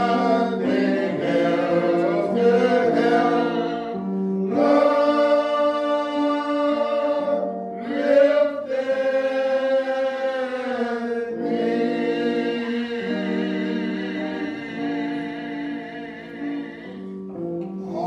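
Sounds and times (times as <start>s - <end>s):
slow gospel hymn singing: 0.0s - 18.0s
sustained accompaniment chords: 0.0s - 18.0s.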